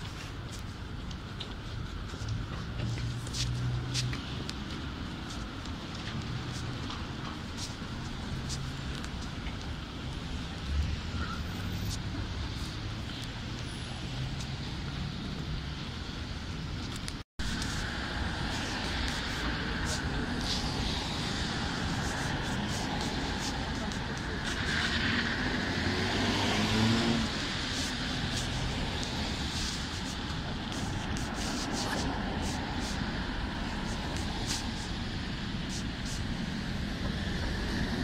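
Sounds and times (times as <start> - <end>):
background traffic: 0.0 - 38.0
rumble of car engines: 0.0 - 38.0
tyre hiss on wet asphalt: 5.2 - 14.6, 17.4 - 38.0.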